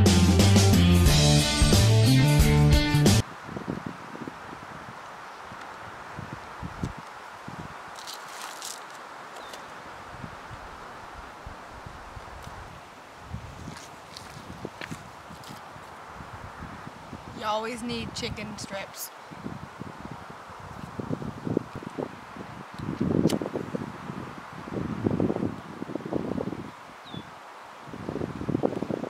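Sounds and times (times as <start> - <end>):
guitar music: 0.0 - 3.2
wind gusting on microphone: 3.2 - 29.0.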